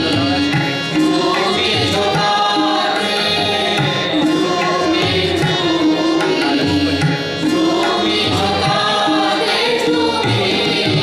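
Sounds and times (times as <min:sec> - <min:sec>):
group singing in unison: 0:00.0 - 0:11.0
low tabla strokes: 0:00.0 - 0:11.0.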